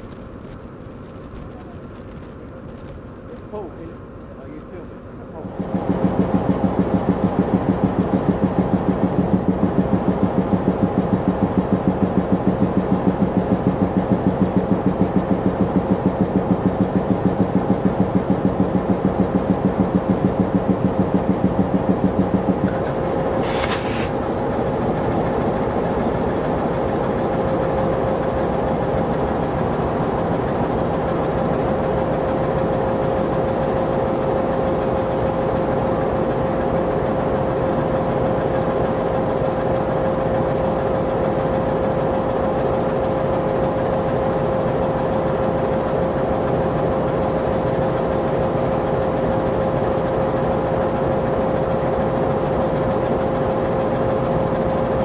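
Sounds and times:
constant engine tone: 0.0s - 55.0s
diesel locomotive engine idling: 2.4s - 55.0s.

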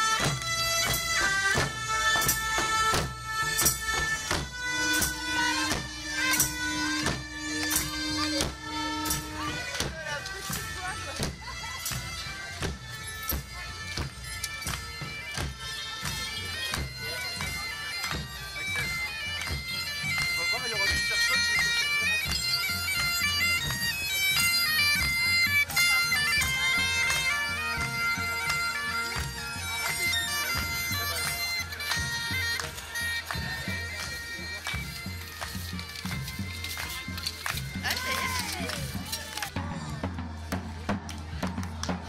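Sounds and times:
bagpipes playing with drone: 0.0s - 40.8s.

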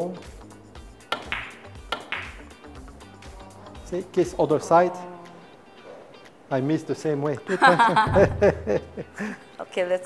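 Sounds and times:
billiard balls clicking: 1.1s - 2.4s
cue tip striking ball: 1.1s - 2.4s.

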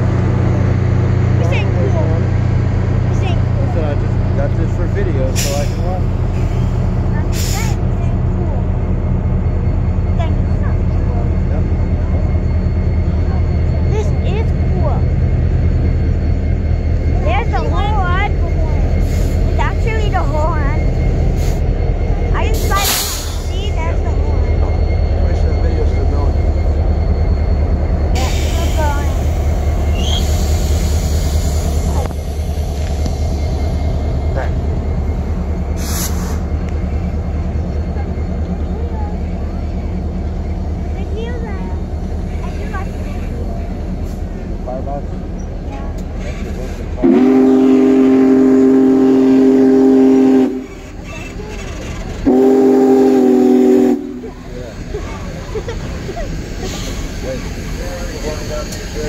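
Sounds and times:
diesel locomotive rumble: 0.0s - 59.0s
train cars rolling on rails: 0.0s - 59.0s
train horn blasts: 47.0s - 51.0s, 52.2s - 54.3s.

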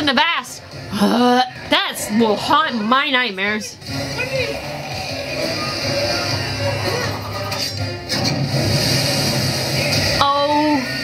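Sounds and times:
gas hissing from a pipe: 4.6s - 11.0s.

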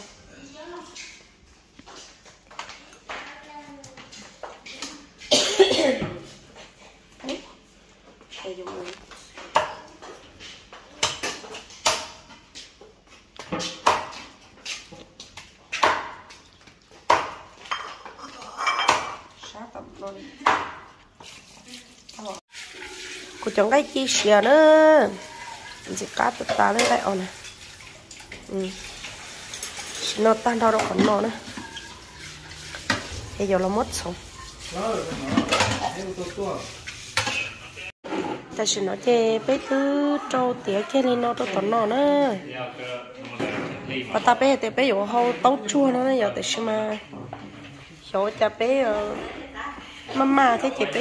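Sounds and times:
utensil and dishes clattering on metal: 15.8s - 19.6s, 25.1s - 38.5s.

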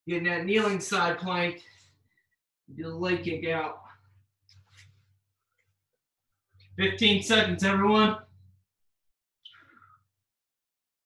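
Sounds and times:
man speaking: 0.1s - 1.6s, 2.7s - 3.9s, 6.8s - 8.2s.

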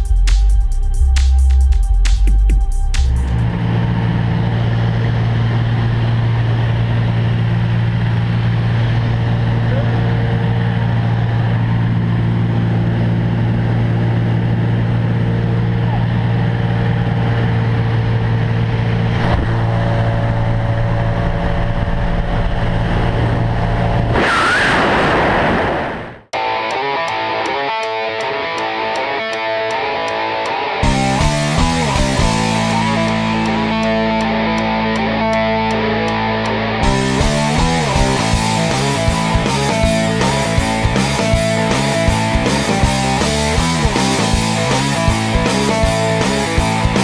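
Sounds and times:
music: 0.0s - 4.1s, 26.4s - 47.0s
propeller plane engine drone: 2.7s - 47.0s.

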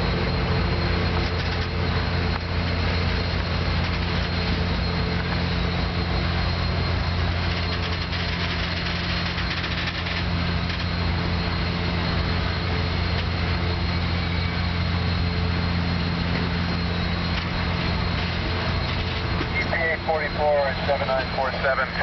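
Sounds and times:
diesel generator hum: 0.0s - 22.0s.

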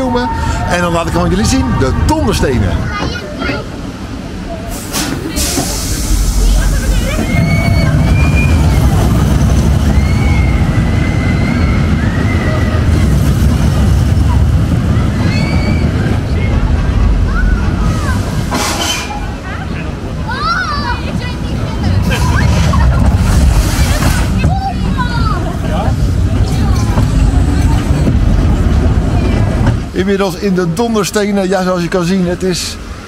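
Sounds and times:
roller coaster rumbling on track: 0.0s - 33.0s
voices: 0.0s - 33.0s.

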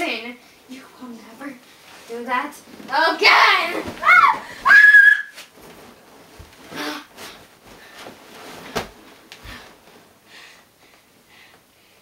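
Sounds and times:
faint rustling: 0.5s - 11.6s
girl shrieking: 4.0s - 5.3s.

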